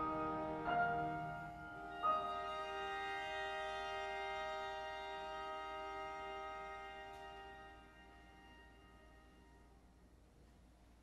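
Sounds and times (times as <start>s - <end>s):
sustained chord piano and strings: 0.0s - 9.9s.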